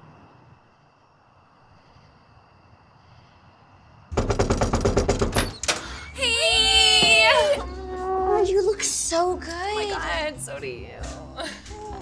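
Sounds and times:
knuckles knocking on wooden door: 4.1s - 5.4s.

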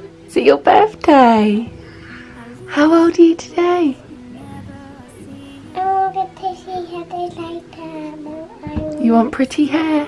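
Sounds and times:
soft background music: 0.0s - 10.0s
little girl singing: 4.3s - 9.0s.

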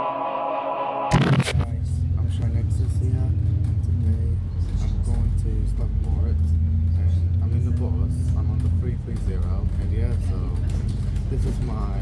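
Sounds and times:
short loud burst: 0.0s - 1.7s
bus engine and road rumble: 1.2s - 12.0s.

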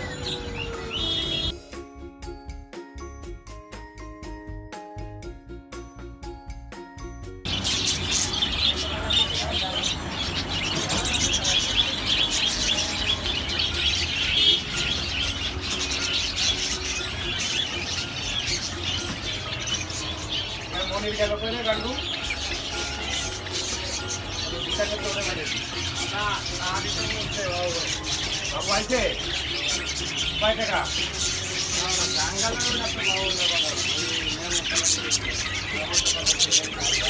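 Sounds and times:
busy shop ambience: 0.0s - 1.6s, 7.4s - 37.0s
caged birds chirping and chattering: 0.0s - 1.8s, 7.0s - 37.0s
bell-like mallet music: 0.0s - 37.0s.

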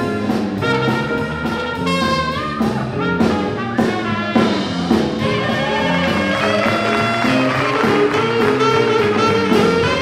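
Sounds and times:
jazz big band swing tune: 0.0s - 10.0s
sustained horn notes: 0.0s - 10.0s.

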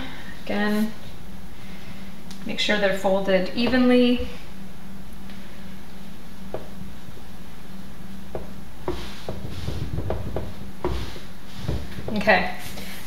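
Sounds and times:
low hum: 0.0s - 12.6s
hands rubbing towels: 8.8s - 13.0s.

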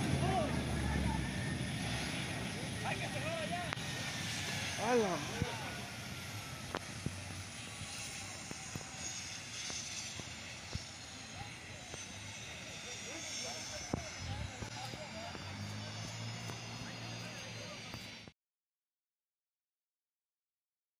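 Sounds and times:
distant people shouting: 0.0s - 1.8s
helicopter turbine engine whine: 0.0s - 18.3s.

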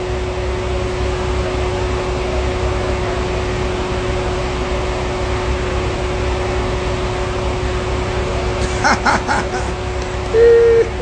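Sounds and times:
steady machine hum: 0.0s - 11.0s.

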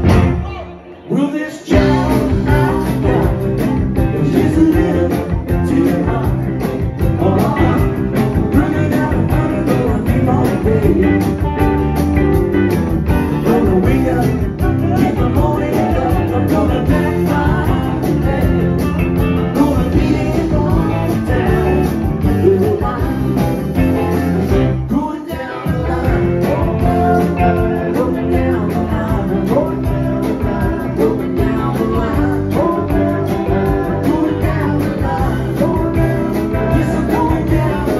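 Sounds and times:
rock band playing live: 0.0s - 37.9s.

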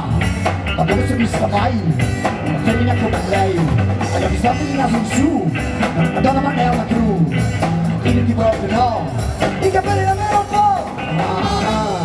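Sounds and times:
live rock and roll band: 0.0s - 12.0s.

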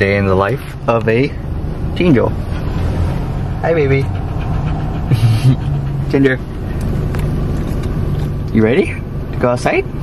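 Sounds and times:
car idling hum: 0.0s - 10.0s
short breathy rush: 2.4s - 7.0s
dog panting: 2.4s - 8.4s.

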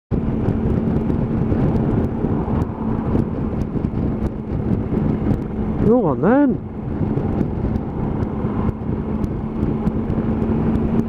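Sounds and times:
motorcycle engine: 0.1s - 11.0s
wind rushing on microphone: 0.1s - 11.0s.

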